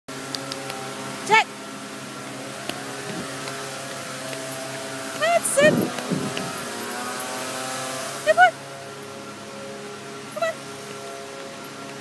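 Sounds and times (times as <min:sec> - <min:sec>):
motor running: 0:00.1 - 0:12.0.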